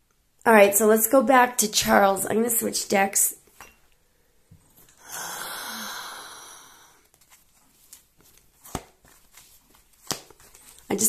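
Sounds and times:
person sighing: 0:05.0 - 0:07.1.

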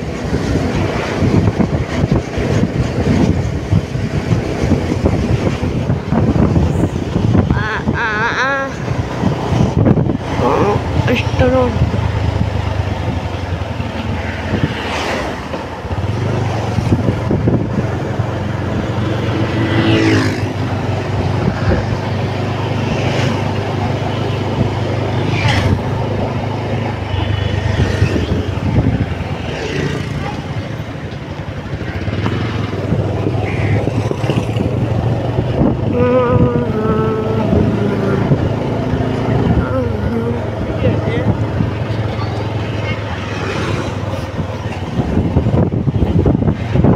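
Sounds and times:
vehicle engine hum and road noise: 0:00.0 - 0:46.9.

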